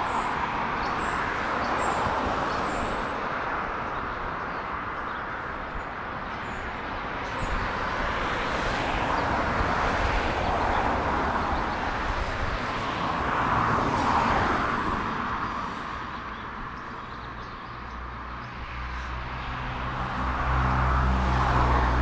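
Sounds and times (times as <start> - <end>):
rushing vehicle noise: 0.0 - 22.0.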